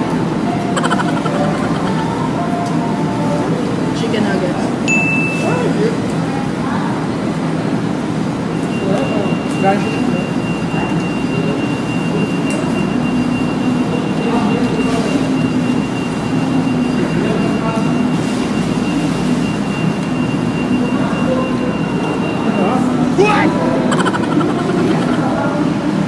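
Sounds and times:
indistinct voices: 0.0 - 4.8, 20.6 - 26.0
low room hum: 0.0 - 5.0.

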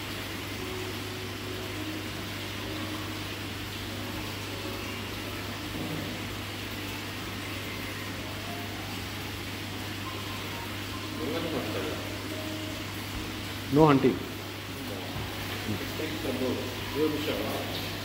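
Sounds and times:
aquarium air pump humming: 0.0 - 18.0
constant hiss: 0.0 - 18.0.

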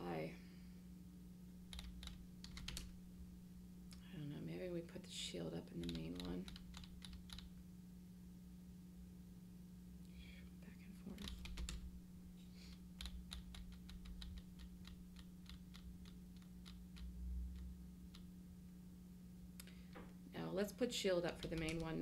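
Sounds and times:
low electrical hum: 0.0 - 22.0
keyboard typing: 1.7 - 3.0, 5.8 - 7.5, 11.1 - 12.0, 12.7 - 18.3, 21.3 - 22.0.

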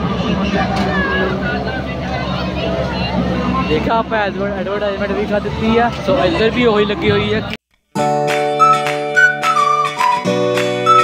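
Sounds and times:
distant voices talking: 0.0 - 7.6.

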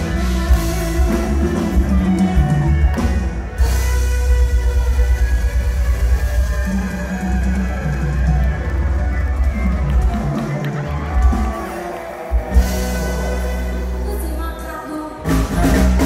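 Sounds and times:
strong bass line: 0.0 - 14.6
live band playing: 0.0 - 16.0.

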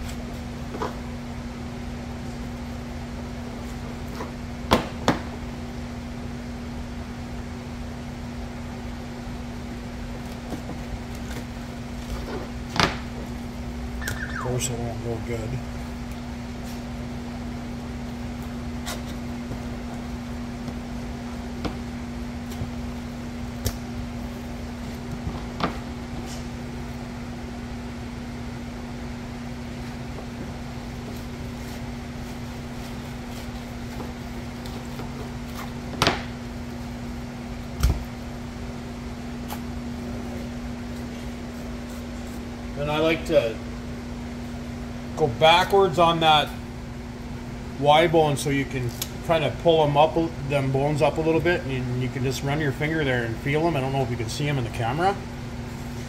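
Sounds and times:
steady machine hum: 0.0 - 56.0.

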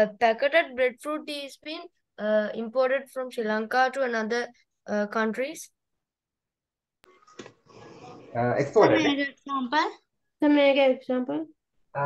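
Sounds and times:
person speaking: 7.8 - 10.0.

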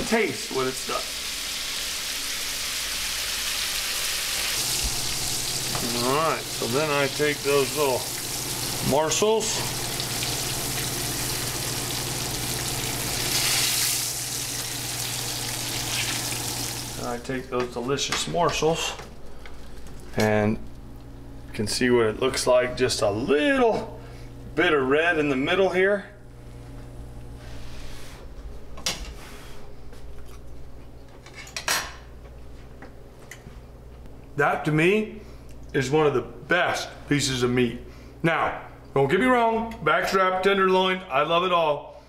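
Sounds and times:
meat sizzling in a skillet: 0.0 - 17.0
steady low hum: 4.5 - 39.8.

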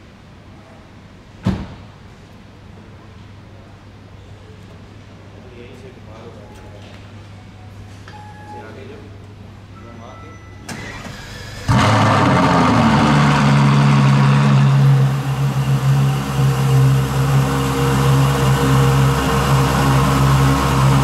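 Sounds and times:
short knock: 1.4 - 1.9
car engine starting and idling: 10.7 - 21.0.

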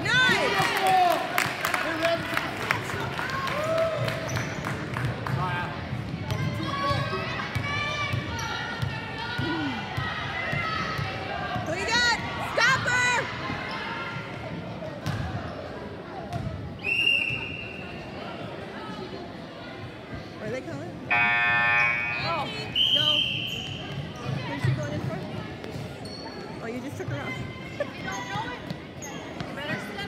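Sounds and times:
murmur of spectators: 0.0 - 30.0
sneakers squeaking: 4.2 - 4.8, 13.5 - 18.2, 21.1 - 30.0.

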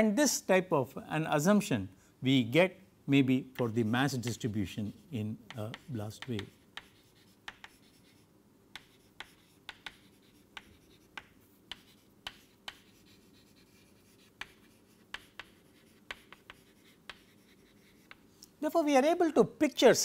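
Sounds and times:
chalk tapping and scratching: 3.5 - 18.5.

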